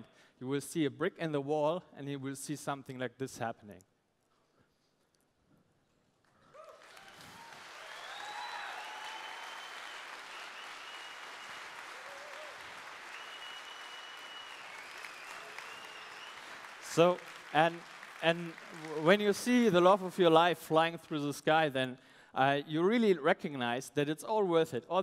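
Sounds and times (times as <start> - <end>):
audience applause: 6.5 - 20.3
cheers and whistles: 6.6 - 16.7.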